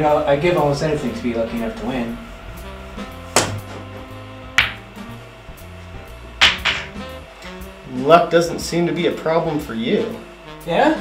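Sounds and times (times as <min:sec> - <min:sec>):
background music: 0:00.0 - 0:11.0
pool balls clacking: 0:03.3 - 0:03.9, 0:04.5 - 0:05.1, 0:06.3 - 0:07.2.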